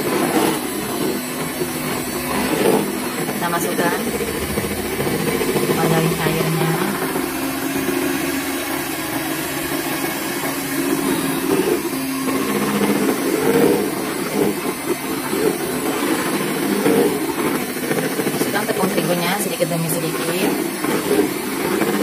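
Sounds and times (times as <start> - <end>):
electric hand mixer churning batter: 0.0 - 22.0.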